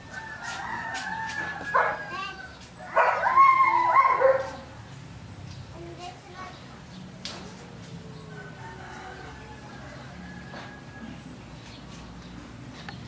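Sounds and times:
cats yowling: 2.9 - 4.6.

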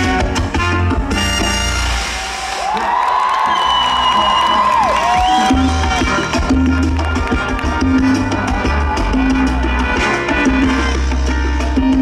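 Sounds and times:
live salsa band playing: 0.0 - 2.8, 3.4 - 12.0.

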